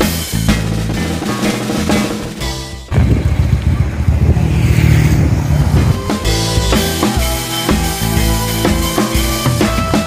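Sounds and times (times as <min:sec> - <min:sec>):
background music: 0:00.0 - 0:03.2, 0:05.4 - 0:10.0
motorcycle engines rumbling: 0:00.5 - 0:10.0.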